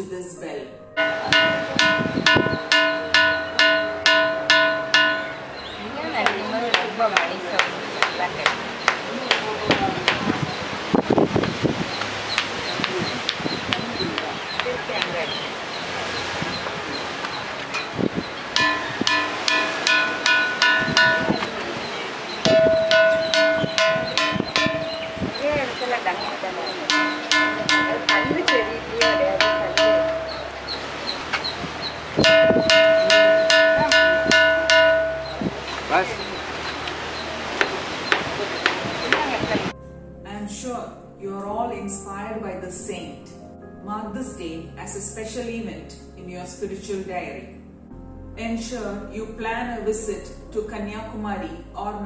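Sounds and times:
ringing rock struck with stone: 1.0 - 5.4, 18.6 - 26.0, 26.7 - 31.6, 32.2 - 35.8
low ringing tone: 1.0 - 6.1, 16.5 - 37.4
stone striking ringing boulder: 18.6 - 21.7.

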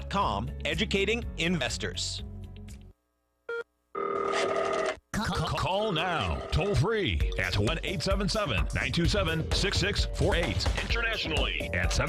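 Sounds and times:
telephone ringing: 3.5 - 5.0, 5.8 - 6.8.

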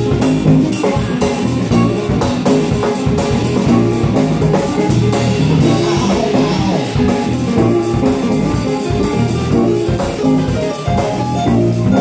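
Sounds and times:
drum kit steady beat: 0.0 - 12.0
electric guitar: 0.0 - 12.0.

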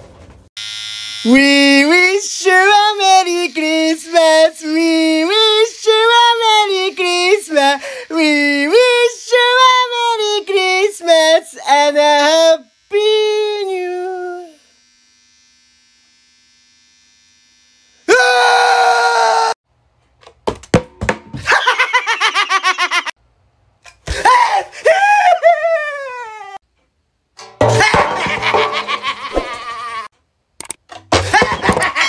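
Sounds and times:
loud high yell: 18.1 - 19.6.

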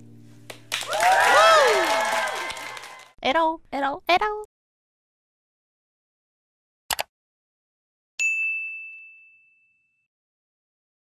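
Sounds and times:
bright bell ding: 8.2 - 10.1.

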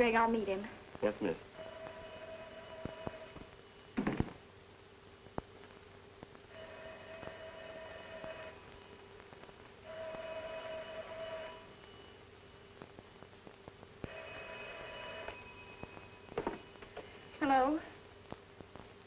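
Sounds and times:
steady low hum: 0.0 - 19.0
telephone bell ringing: 1.6 - 3.4, 6.5 - 9.0, 9.8 - 12.2, 14.1 - 17.6.

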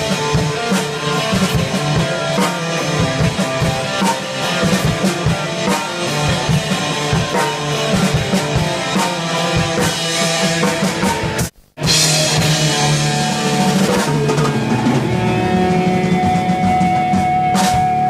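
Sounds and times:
drum kit hitting: 0.0 - 18.0
hard rock band playing: 0.0 - 18.0.

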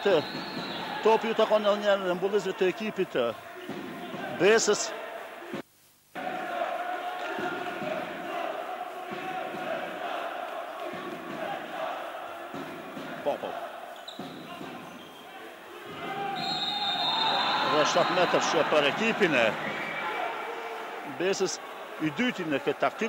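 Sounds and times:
players and crowd shouting: 0.0 - 5.6, 6.2 - 23.0
ball bouncing on court: 3.6 - 4.4, 12.5 - 13.3, 14.1 - 15.0.

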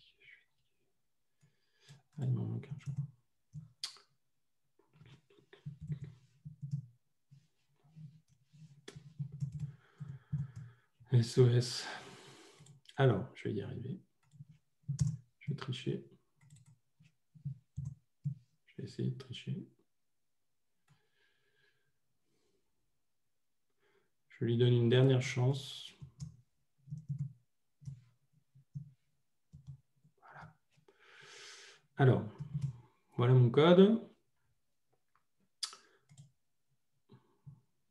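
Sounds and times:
computer keyboard tapping: 5.6 - 6.9, 8.9 - 10.7, 14.2 - 15.2, 26.1 - 28.0, 29.5 - 29.8.

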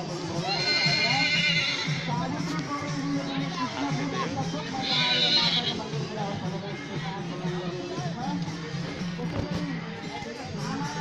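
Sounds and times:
horse whinnying: 0.4 - 2.1.

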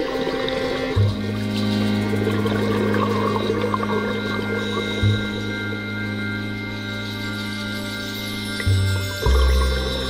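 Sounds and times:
droning low background music: 0.0 - 10.0.

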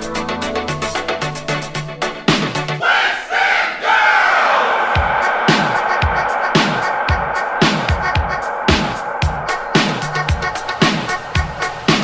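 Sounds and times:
crowd shouting: 2.8 - 10.6
retro dance music: 4.5 - 12.0.

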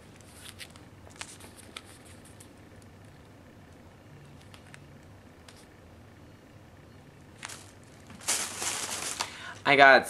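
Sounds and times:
packaging rustling: 7.4 - 9.6.

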